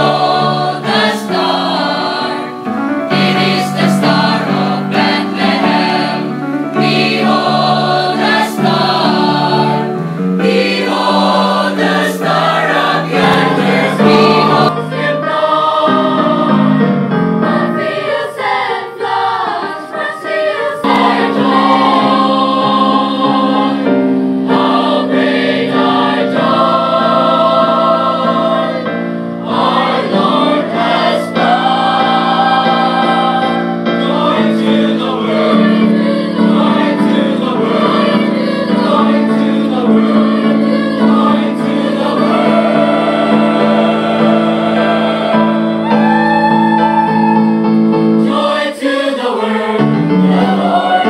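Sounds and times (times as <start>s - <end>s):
mixed choir singing: 0.0s - 51.0s.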